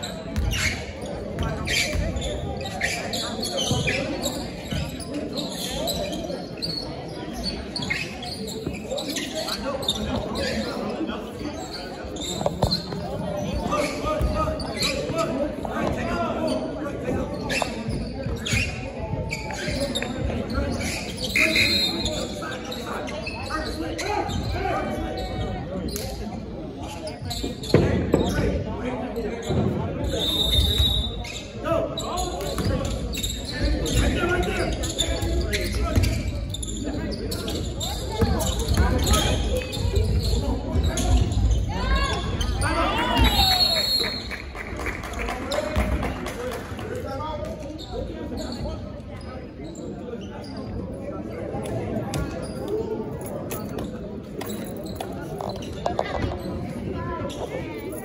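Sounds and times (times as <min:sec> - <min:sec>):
people talking: 0:00.0 - 0:58.0.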